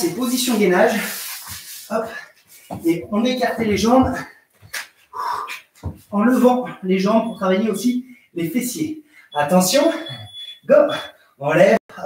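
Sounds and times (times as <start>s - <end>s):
man speaking: 0.0s - 1.3s, 1.9s - 4.3s, 6.1s - 12.0s.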